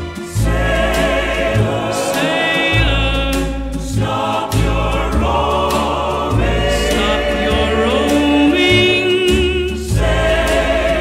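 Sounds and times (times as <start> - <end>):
bass line: 0.0 - 11.0
chorus singing sustained notes: 0.0 - 11.0
studio orchestra: 0.0 - 11.0.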